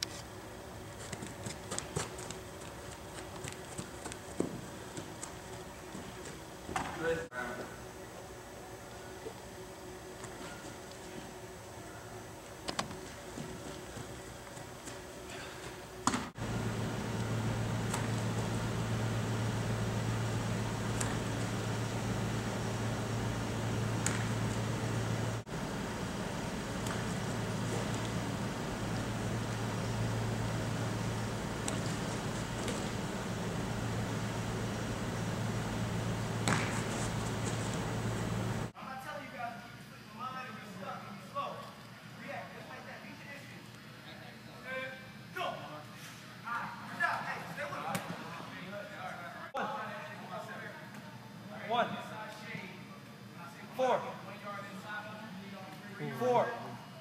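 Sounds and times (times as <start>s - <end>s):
air-handling equipment humming: 0.0s - 38.8s.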